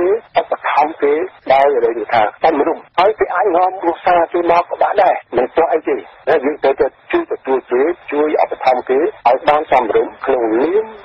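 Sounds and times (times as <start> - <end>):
radio news voice talking: 0.0 - 11.0.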